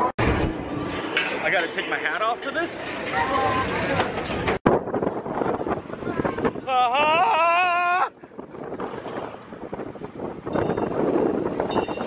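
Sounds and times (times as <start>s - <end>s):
roller coaster train rumbling: 0.0s - 12.0s
wind on microphone: 3.0s - 12.0s
person whooping: 6.6s - 8.2s.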